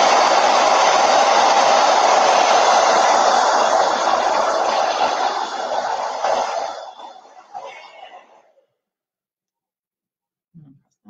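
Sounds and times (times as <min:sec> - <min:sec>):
hair dryer blowing: 0:00.0 - 0:07.7.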